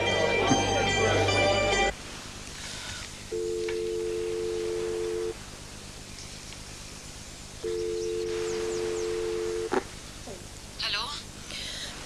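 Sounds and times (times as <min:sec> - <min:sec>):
telephone ringback tone: 0:03.3 - 0:05.4, 0:07.6 - 0:09.7.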